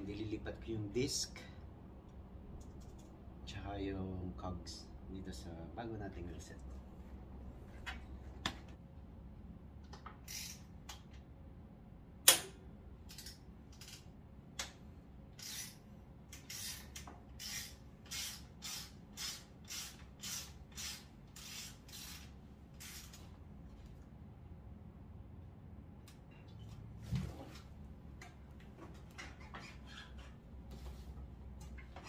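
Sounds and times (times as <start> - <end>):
sharp metallic click: 12.3 - 14.0.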